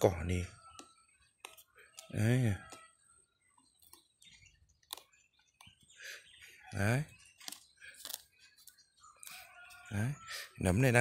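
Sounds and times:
rooster crowing: 0:09.1 - 0:10.6.

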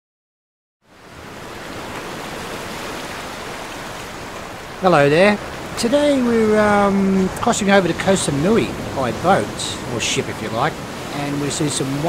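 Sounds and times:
steady rushing noise: 0:01.5 - 0:12.0.

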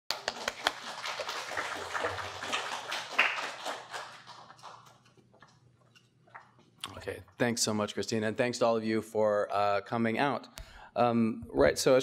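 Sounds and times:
audience applauding: 0:00.1 - 0:05.1.

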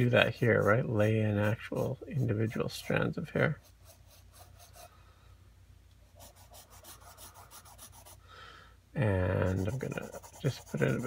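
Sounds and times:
pencil scratching on paper: 0:00.0 - 0:04.9, 0:06.1 - 0:08.2, 0:09.3 - 0:11.0.

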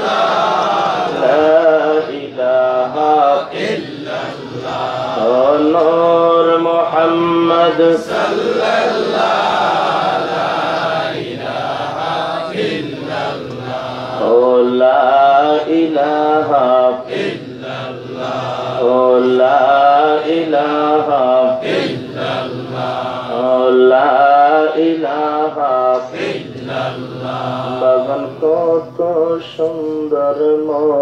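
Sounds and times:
man chanting into a microphone: 0:01.2 - 0:08.7, 0:13.6 - 0:22.2, 0:23.0 - 0:31.0.

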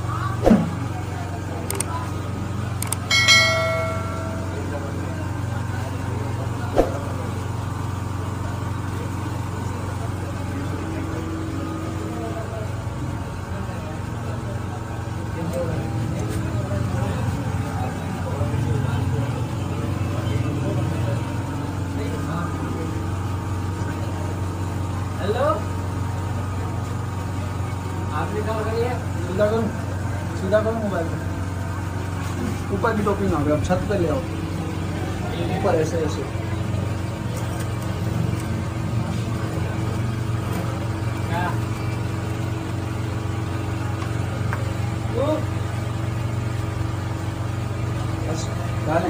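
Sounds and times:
faint indistinct voices: 0:00.0 - 0:49.0
low mechanical hum: 0:00.0 - 0:49.0.

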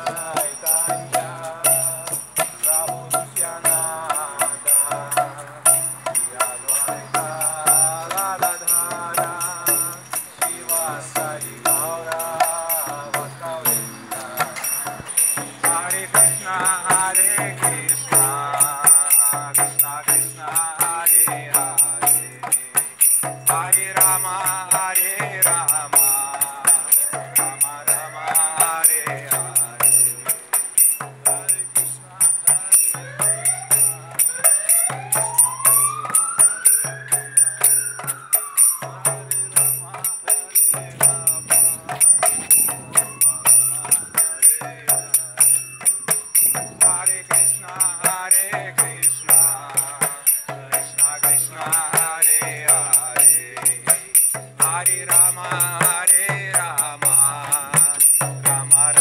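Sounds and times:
drum rhythm: 0:00.0 - 0:59.0
hand cymbals clinking: 0:00.0 - 0:59.0
men singing: 0:00.0 - 0:59.0.

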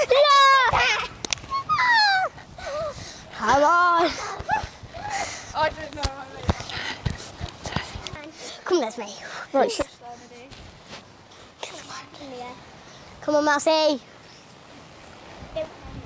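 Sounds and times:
girls calling out and squealing: 0:00.0 - 0:10.5.

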